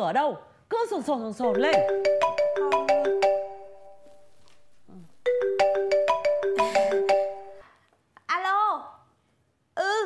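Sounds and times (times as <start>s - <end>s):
mobile phone ringtone: 1.5s - 7.6s.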